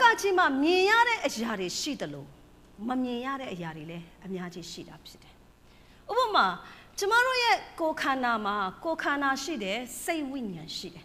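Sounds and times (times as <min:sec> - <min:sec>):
woman preaching: 0:00.0 - 0:05.4, 0:06.1 - 0:11.0.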